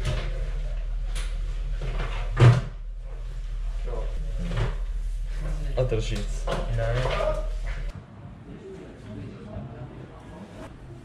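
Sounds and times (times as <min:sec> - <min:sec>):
steady low hum: 0:00.0 - 0:08.6
background voices talking: 0:00.0 - 0:11.0.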